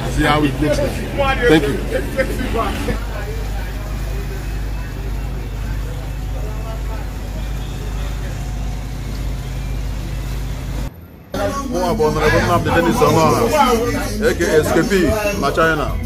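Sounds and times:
motorboat engine humming: 0.0s - 15.4s
faint voices: 0.0s - 16.0s.

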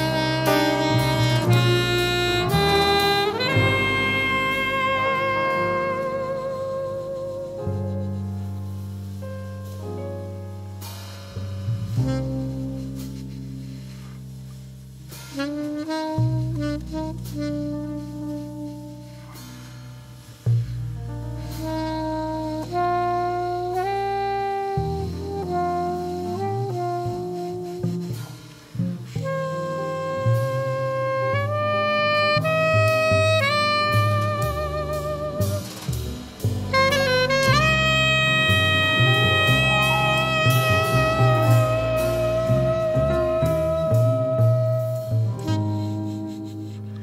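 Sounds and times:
saxophone ballad melody: 0.0s - 10.9s, 11.8s - 19.4s, 20.2s - 47.0s
double bass: 0.0s - 47.0s
grand piano: 0.0s - 47.0s.

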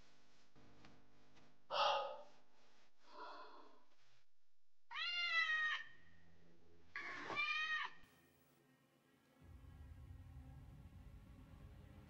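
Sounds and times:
cat meowing: 4.9s - 5.9s, 7.0s - 8.0s.

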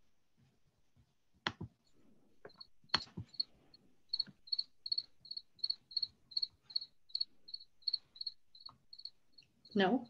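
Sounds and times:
cricket chirping: 2.5s - 3.5s, 4.1s - 10.0s.

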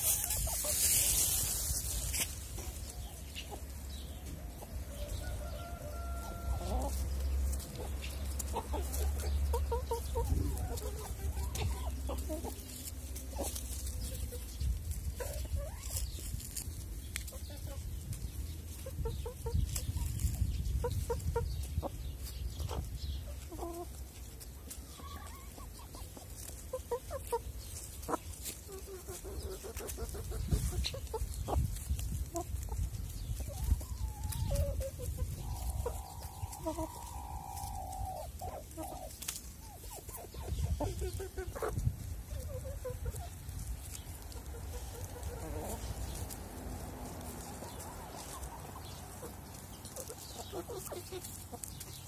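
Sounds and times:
hens clucking: 0.0s - 52.0s.

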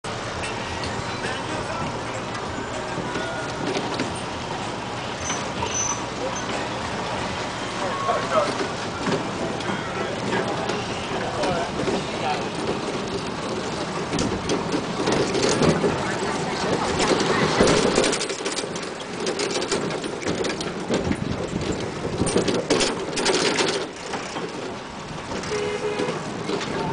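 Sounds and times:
street and road noise: 0.0s - 26.9s
people talking: 0.8s - 13.2s, 15.1s - 18.6s.

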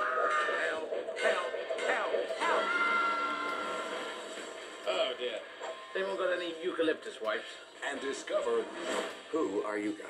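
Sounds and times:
film trailer soundtrack: 0.0s - 10.0s.

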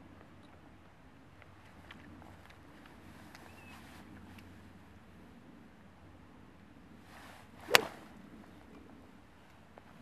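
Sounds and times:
golf club swish: 7.1s - 8.2s
golf club striking ice ball: 7.7s - 8.0s.

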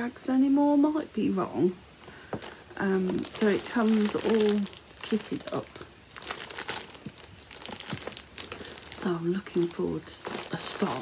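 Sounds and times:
packaging crinkling: 2.3s - 11.0s.

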